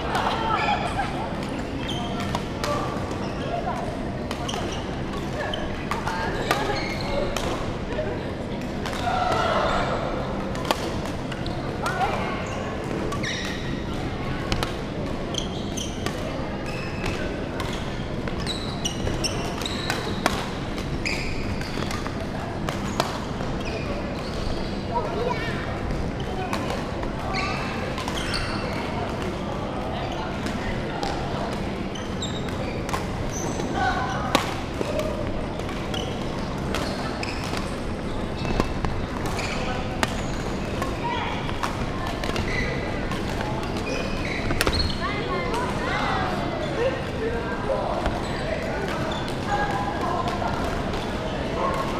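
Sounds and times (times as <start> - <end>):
distant voices in a hall: 0.0 - 51.9
shoe squeaks: 1.6 - 2.4, 4.4 - 7.3, 12.4 - 13.8, 15.3 - 16.0, 16.7 - 20.2, 20.9 - 22.0, 27.3 - 28.9, 31.9 - 34.4, 35.9 - 41.6, 42.3 - 43.0, 43.6 - 45.4.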